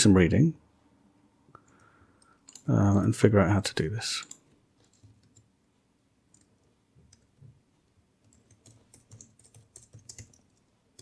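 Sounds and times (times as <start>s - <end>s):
faint keyboard typing: 1.5s - 5.6s, 6.2s - 11.0s.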